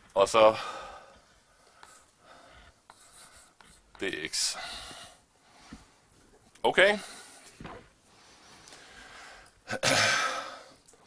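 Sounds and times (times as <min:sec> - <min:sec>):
chalk scratching on blackboard: 0:02.8 - 0:04.1
chalk tapping on blackboard: 0:02.8 - 0:04.1.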